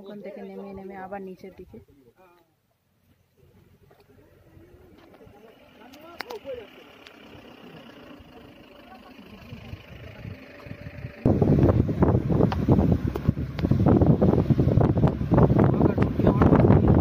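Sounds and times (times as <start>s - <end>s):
faint outdoor background: 0.0s - 17.0s
wind buffeting microphone: 9.4s - 17.0s.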